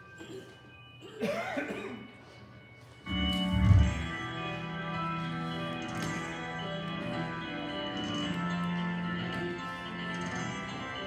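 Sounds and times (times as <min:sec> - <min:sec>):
person coughing: 0:00.1 - 0:02.2
sustained musical notes: 0:02.7 - 0:09.2.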